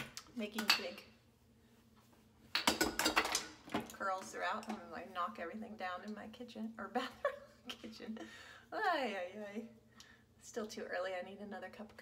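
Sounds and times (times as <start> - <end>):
small objects clattering on counter: 2.5 - 4.0.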